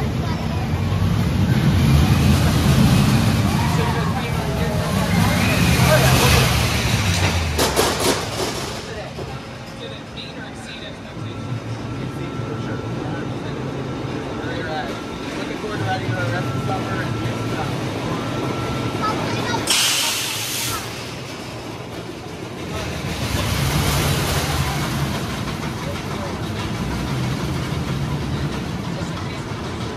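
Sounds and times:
riders' voices: 0:00.0 - 0:29.9
roller coaster rumbling on track: 0:00.0 - 0:29.9
quick clacks: 0:07.0 - 0:09.8.

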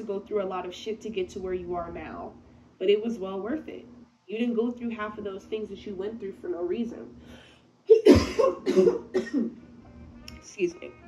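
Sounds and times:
woman coughing: 0:07.9 - 0:09.6.

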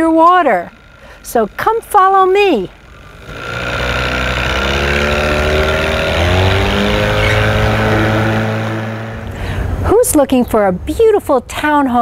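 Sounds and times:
outboard motor running: 0:00.0 - 0:09.8.

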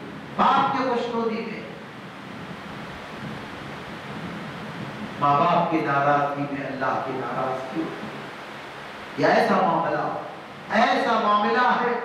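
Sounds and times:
electric fan running: 0:00.0 - 0:12.0.

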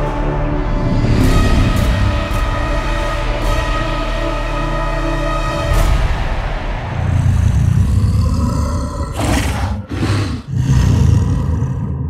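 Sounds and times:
deep monster roar: 0:06.9 - 0:12.0.

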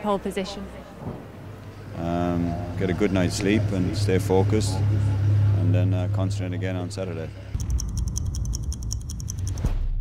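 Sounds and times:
rapid mechanical clicks: 0:07.6 - 0:09.7.

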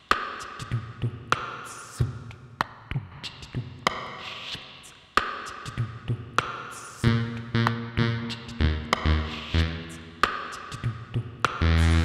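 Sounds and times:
beatboxed percussion loop: 0:00.0 - 0:12.0.

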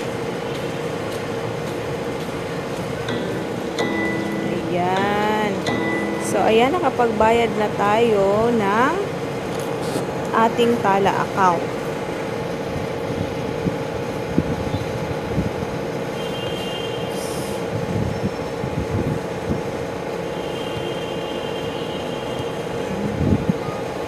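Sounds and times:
short hiss: 0:17.1 - 0:17.7.

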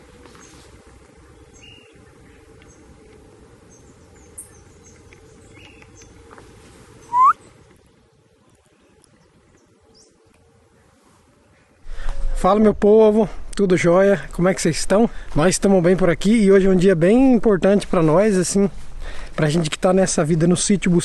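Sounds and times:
low outdoor background: 0:00.0 - 0:21.0
faint bird chirps: 0:07.0 - 0:07.6.

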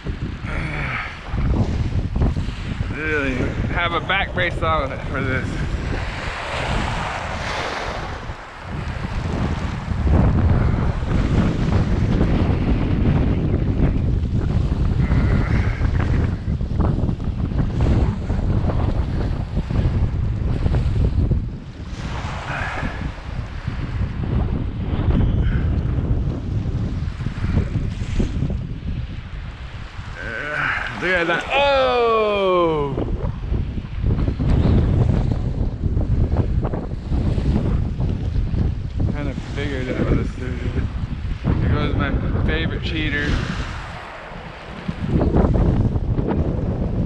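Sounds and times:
gusty wind buffeting microphone: 0:00.0 - 0:47.0.

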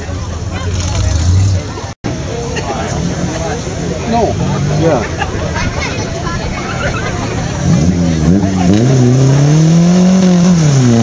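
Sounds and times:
spectators chatting: 0:00.0 - 0:11.0
truck engine rumbling: 0:00.0 - 0:11.0.

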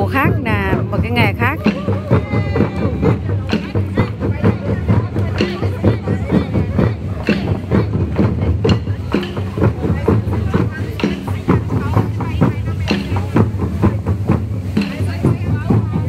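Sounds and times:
crowd voices: 0:00.0 - 0:16.0
hand drums playing rhythm: 0:00.0 - 0:16.0.

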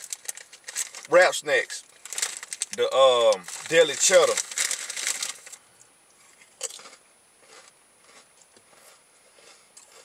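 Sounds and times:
potato chip crunching: 0:00.0 - 0:05.6, 0:06.2 - 0:10.0
chewing crunches: 0:02.0 - 0:10.0.

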